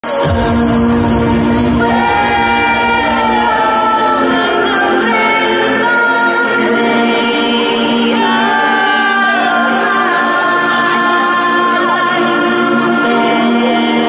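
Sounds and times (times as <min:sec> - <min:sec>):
electronic dance music breakdown: 0:00.0 - 0:07.1
choir-like vocals: 0:00.0 - 0:14.0
synth chords: 0:00.0 - 0:14.0.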